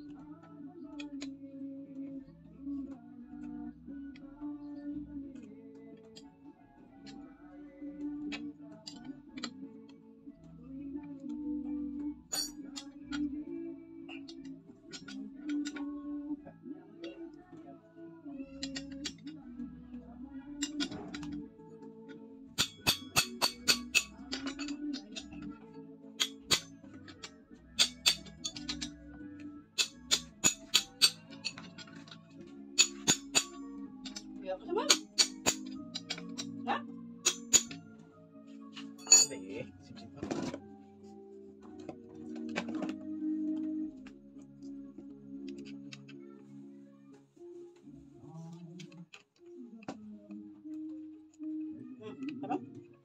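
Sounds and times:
background music with melody: 0:00.0 - 0:53.0
metallic clinks and taps of tools: 0:12.3 - 0:13.3, 0:14.1 - 0:15.9, 0:18.5 - 0:19.4, 0:22.6 - 0:25.6, 0:26.2 - 0:29.0, 0:29.8 - 0:34.3, 0:34.9 - 0:36.6, 0:37.2 - 0:37.9, 0:38.8 - 0:39.4.

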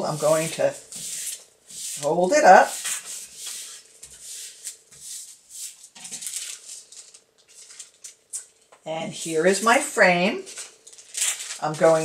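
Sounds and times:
paper rustling and crackling: 0:05.7 - 0:08.6, 0:10.4 - 0:12.0.

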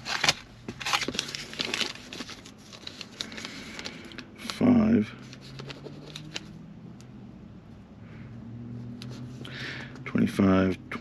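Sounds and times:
low hum in vehicle cabin: 0:00.0 - 0:11.0.

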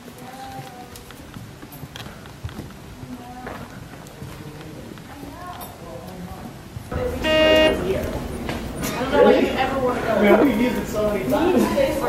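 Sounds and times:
loud horn-like tone: 0:06.9 - 0:09.0
room noise: 0:06.9 - 0:12.0.

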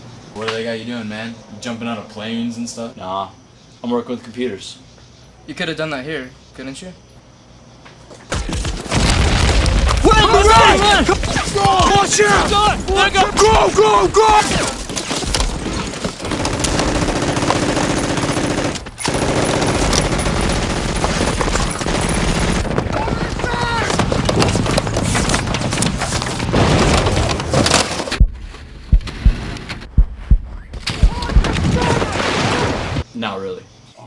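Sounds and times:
automatic weapon fire: 0:14.6 - 0:28.2.

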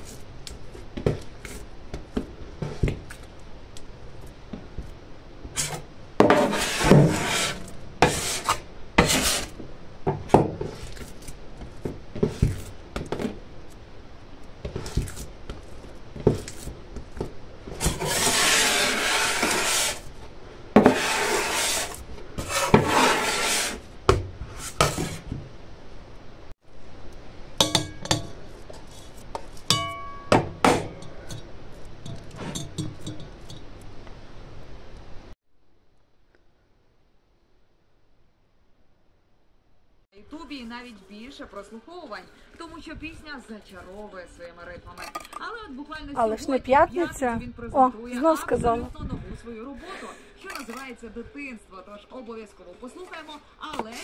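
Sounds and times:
dough rubbing on worktop: 0:05.6 - 0:09.6, 0:17.8 - 0:20.1, 0:20.8 - 0:25.3.

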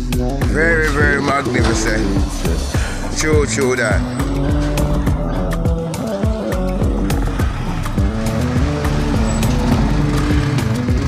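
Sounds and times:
city street traffic: 0:00.0 - 0:11.0
music with steady beat: 0:00.0 - 0:11.0.

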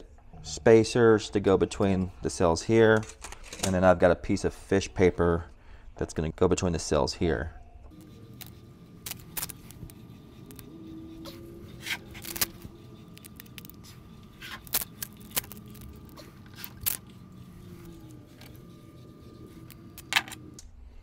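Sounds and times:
low background hum: 0:00.0 - 0:21.0
sharp crackles and clicks: 0:07.9 - 0:10.7, 0:11.8 - 0:17.2.

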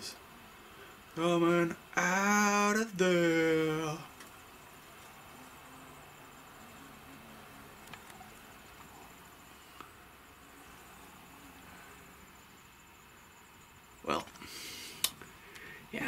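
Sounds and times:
hornets buzzing: 0:00.4 - 0:16.0.

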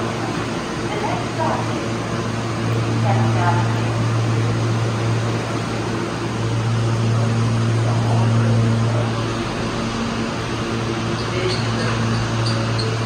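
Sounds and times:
subway car low hum: 0:00.0 - 0:13.0.

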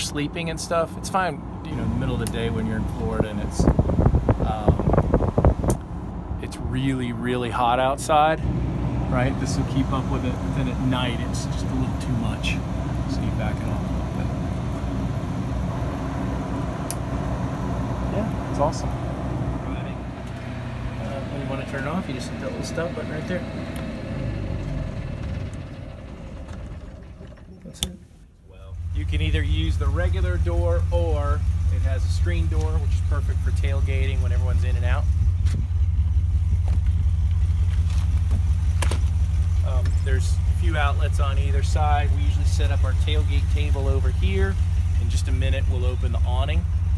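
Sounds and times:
generator engine idling: 0:09.1 - 0:15.7, 0:28.7 - 0:46.9.

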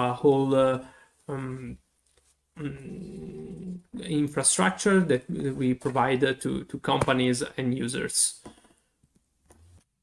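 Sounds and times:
man saying uhhh: 0:02.6 - 0:04.2.

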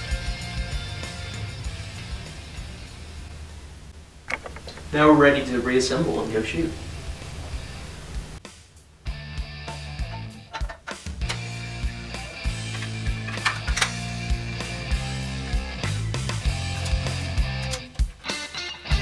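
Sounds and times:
rock music with guitar: 0:00.0 - 0:03.0, 0:08.5 - 0:19.0.

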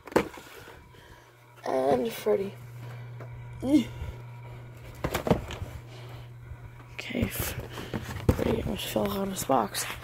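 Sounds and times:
low steady hum: 0:00.0 - 0:10.0
cardboard box knocks and rattles: 0:05.0 - 0:05.6.

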